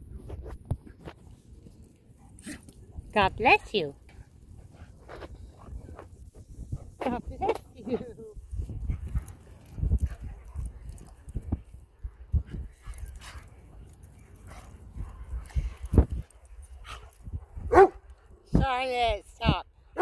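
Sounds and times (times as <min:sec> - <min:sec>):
dog barks: 0:17.7 - 0:18.0.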